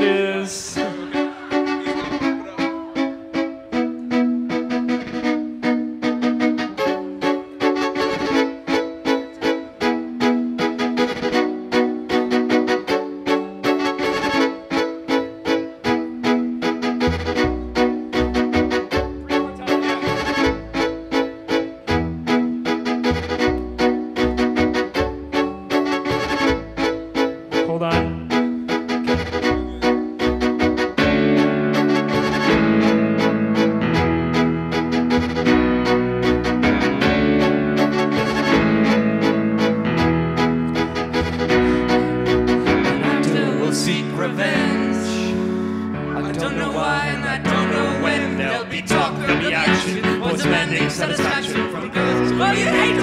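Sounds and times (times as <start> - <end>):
sustained instrumental chords: 0.0 - 53.0
violin playing rhythmic notes: 0.0 - 53.0.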